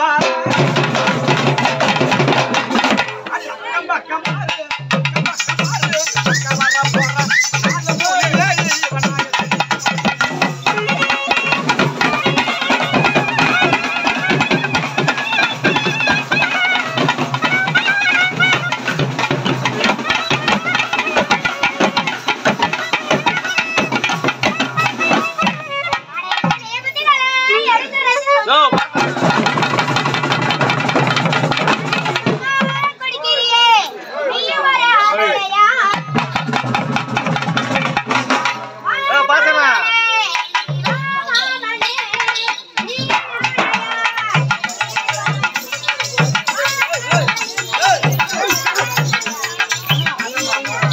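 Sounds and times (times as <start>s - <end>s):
stick-beaten barrel drums: 0.0s - 33.9s, 35.7s - 50.9s.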